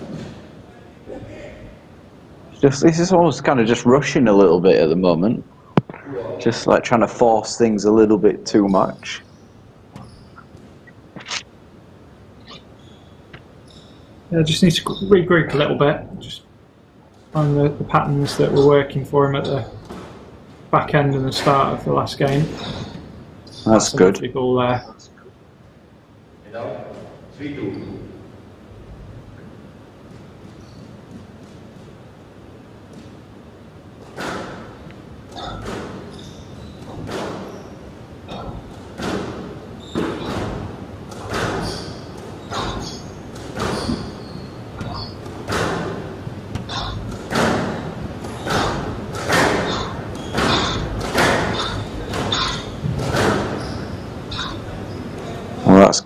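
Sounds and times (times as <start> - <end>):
squash ball cracking off rackets and walls: 32.8 - 55.6.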